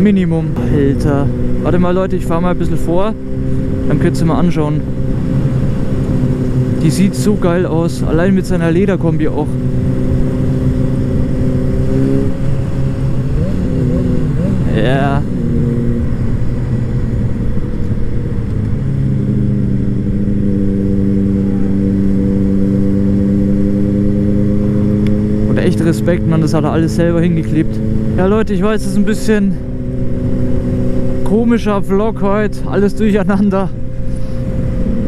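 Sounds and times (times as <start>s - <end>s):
motorcycle engine: 0.0s - 35.0s.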